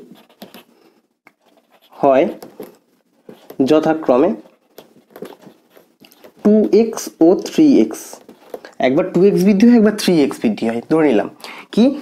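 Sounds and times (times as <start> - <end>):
marker scratching on whiteboard: 0.0 - 7.1
man speaking: 1.9 - 2.5, 3.6 - 4.5, 6.4 - 12.0.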